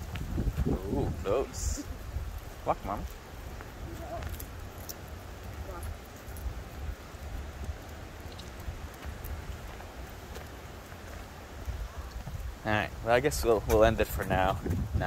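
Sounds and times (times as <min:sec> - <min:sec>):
footsteps on paved path: 0:00.0 - 0:15.0
wind rumble on microphone: 0:00.0 - 0:15.0.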